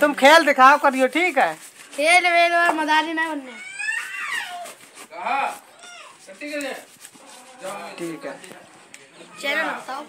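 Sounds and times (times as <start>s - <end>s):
boy imitating cat meows: 3.3s - 4.8s, 5.8s - 6.2s.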